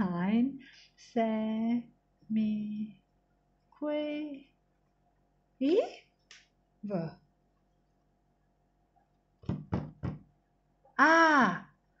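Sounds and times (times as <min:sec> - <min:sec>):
knocks on desk: 0:09.4 - 0:10.3.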